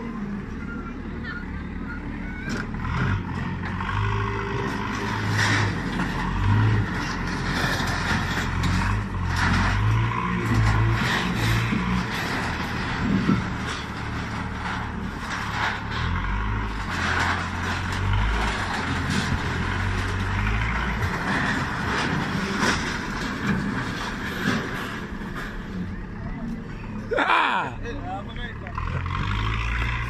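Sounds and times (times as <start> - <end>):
diesel engine working under load: 0.0 - 30.0
crashes of metal sheeting and timber: 4.6 - 25.8.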